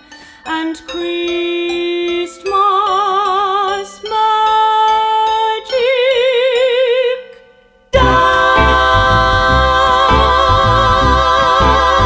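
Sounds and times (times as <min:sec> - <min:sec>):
pulsing bass notes: 0:08.0 - 0:12.0
women singing in harmony: 0:08.0 - 0:12.0.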